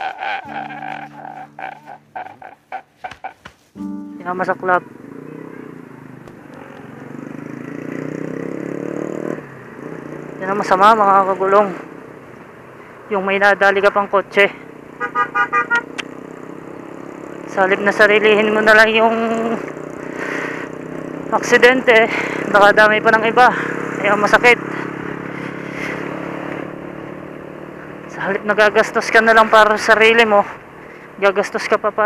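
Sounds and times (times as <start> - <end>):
man sobbing: 0.0 - 3.0
scooter engine humming: 0.0 - 13.1, 14.6 - 28.5
vehicle horn short beeps: 15.0 - 15.9.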